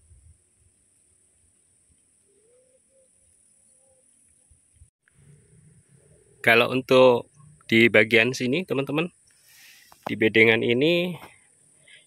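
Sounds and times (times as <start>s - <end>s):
steady high hiss: 3.2s - 12.0s.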